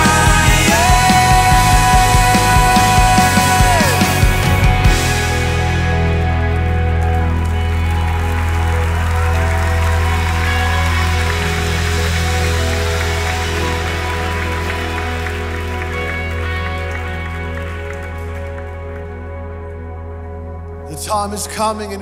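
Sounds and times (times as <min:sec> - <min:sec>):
congregation applause: 0:00.0 - 0:21.2
band sustained chord: 0:00.0 - 0:22.0.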